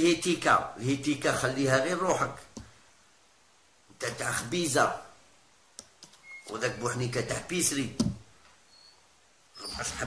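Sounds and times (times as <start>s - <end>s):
man talking: 0.0s - 2.5s, 4.0s - 5.2s, 6.5s - 8.2s, 9.6s - 10.0s.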